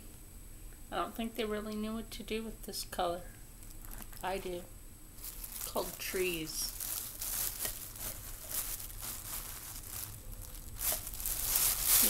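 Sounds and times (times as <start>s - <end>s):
rustling and crinkling: 3.6s - 12.0s.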